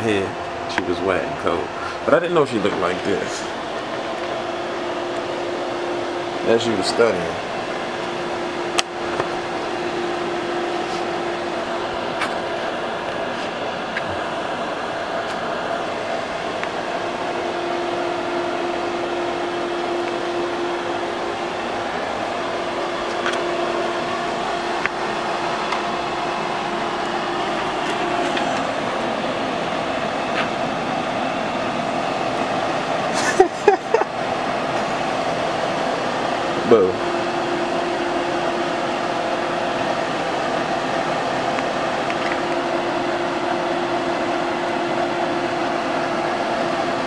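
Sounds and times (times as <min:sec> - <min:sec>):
hood hair dryer whirring: 0:00.0 - 0:47.0.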